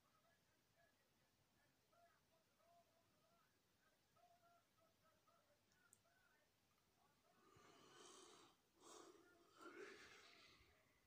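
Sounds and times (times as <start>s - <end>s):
faint breaths: 7.0s - 11.0s.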